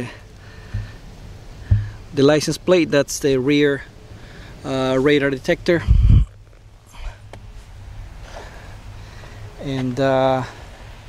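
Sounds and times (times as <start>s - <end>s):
low thump: 0.7s - 1.0s, 1.6s - 2.1s
handling or wind rumble on microphone: 5.6s - 6.8s.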